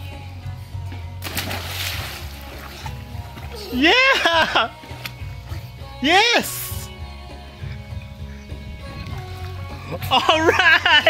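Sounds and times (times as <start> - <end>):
child splashing into pool: 1.2 - 2.8
water sloshing: 1.2 - 5.4.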